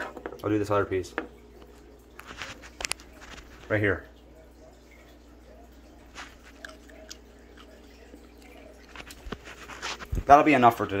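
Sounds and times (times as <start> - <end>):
soft handling noises: 1.1 - 4.0, 8.4 - 10.9.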